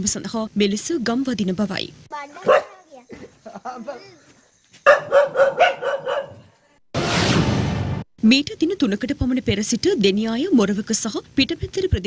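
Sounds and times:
dog barking rapidly: 2.3 - 2.9, 4.8 - 6.5.

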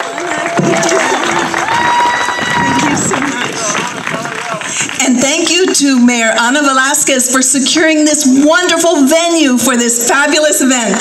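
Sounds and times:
crowd whooping: 0.0 - 4.6
audience applauding: 0.0 - 6.1.

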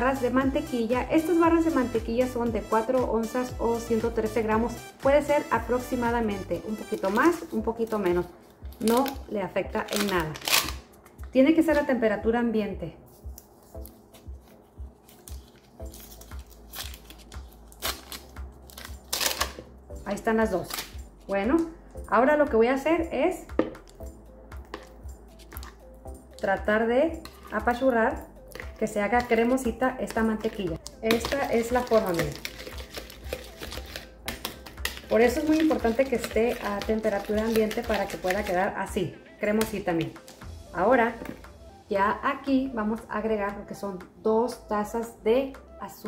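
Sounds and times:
background music with low beat: 0.0 - 46.0
paper wrapper crackling: 9.8 - 10.8, 15.0 - 19.6, 31.1 - 38.5.

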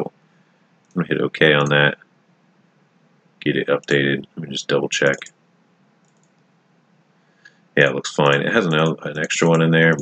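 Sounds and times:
spoken word: 1.0 - 2.0, 3.4 - 5.3, 7.8 - 10.0
faint computer mouse clicks: 6.0 - 6.4.

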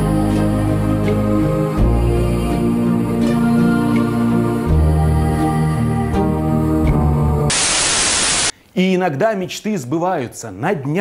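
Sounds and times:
music: 0.0 - 7.5
tv static hiss: 7.5 - 8.6
man speaking: 8.8 - 11.0.

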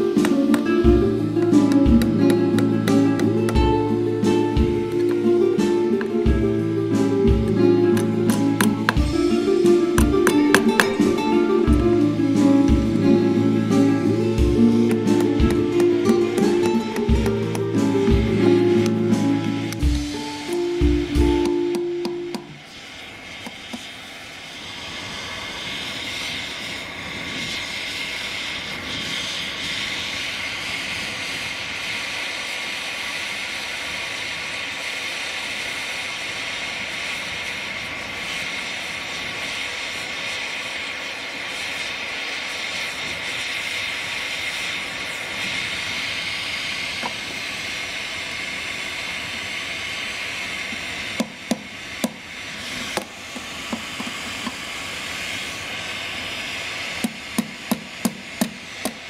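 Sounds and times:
gas torch flame hissing: 0.0 - 59.0
hammer tapping metal: 8.0 - 9.1, 10.0 - 11.2, 14.9 - 17.7, 20.5 - 22.6.

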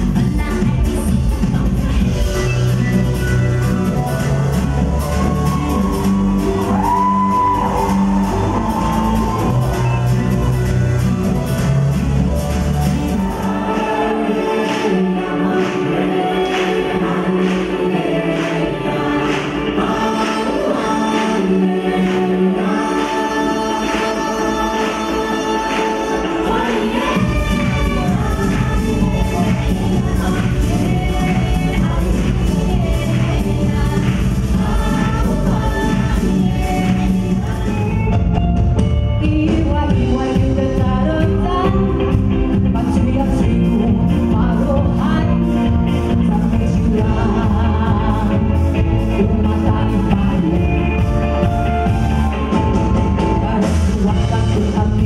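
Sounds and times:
woman singing: 0.0 - 10.4, 13.1 - 38.3, 39.1 - 52.0, 53.0 - 55.0
live pop band playing: 0.0 - 55.0.

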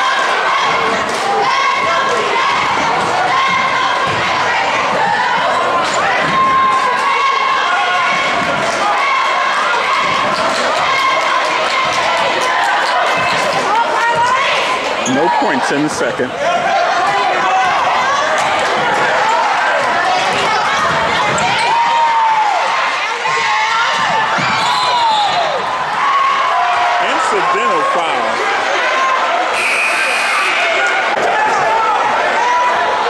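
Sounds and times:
spectators talking and shouting: 0.0 - 33.0
shrill referee's whistle: 24.4 - 25.5, 29.5 - 31.0.

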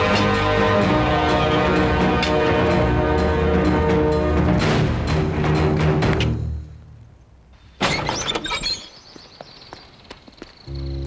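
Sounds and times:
music: 0.0 - 6.8, 10.7 - 11.0
metal gate clank and rattle: 7.8 - 8.9.

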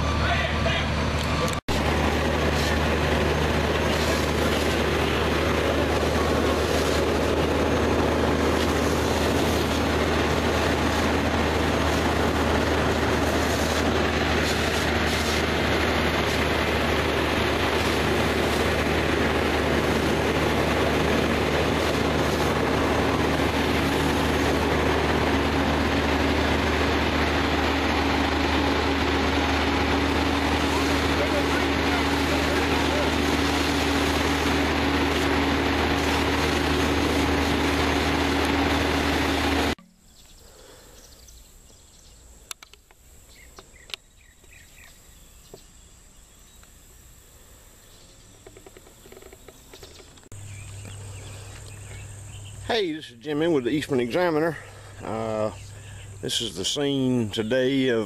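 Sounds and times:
fire engine running: 0.0 - 39.9, 46.6 - 58.0.

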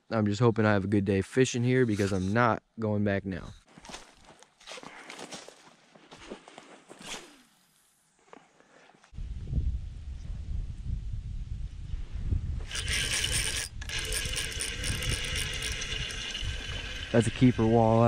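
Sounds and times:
fishing reel whirring and clicking: 12.6 - 18.0.

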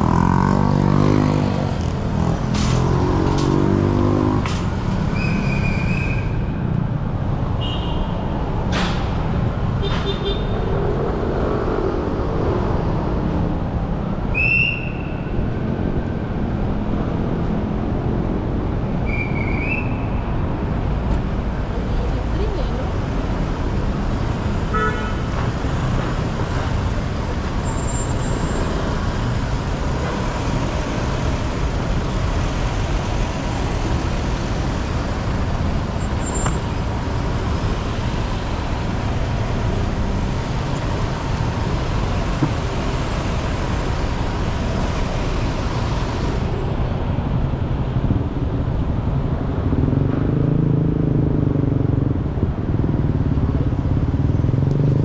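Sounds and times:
street traffic: 0.0 - 55.0.

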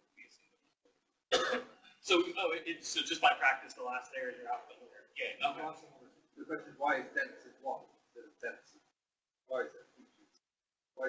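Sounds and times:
person coughing: 1.3 - 1.8.

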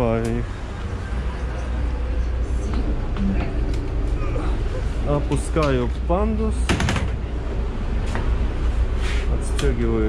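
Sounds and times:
bus engine idling: 0.0 - 10.0.

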